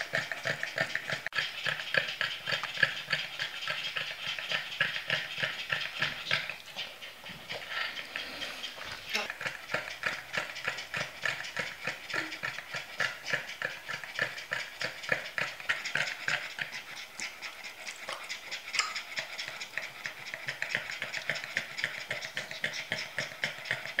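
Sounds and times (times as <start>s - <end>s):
dogs panting hard: 0.0s - 24.0s.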